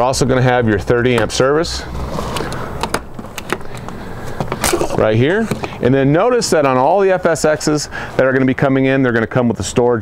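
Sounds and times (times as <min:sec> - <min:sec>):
steady outdoor hiss: 0:00.0 - 0:10.0.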